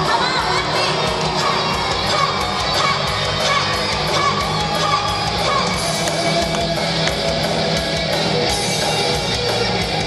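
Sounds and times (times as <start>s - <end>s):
audience cheering and screaming: 0.0s - 10.0s
loud rock music: 0.0s - 10.0s.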